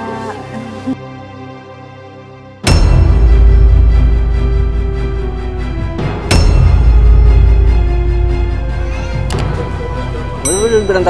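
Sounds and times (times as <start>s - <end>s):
background music: 0.0s - 11.0s
bright ding: 10.4s - 11.0s.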